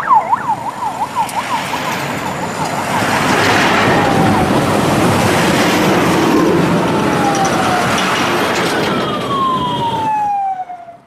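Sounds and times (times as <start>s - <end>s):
passing vehicles: 0.0s - 11.0s
siren sliding down in pitch: 0.0s - 11.0s.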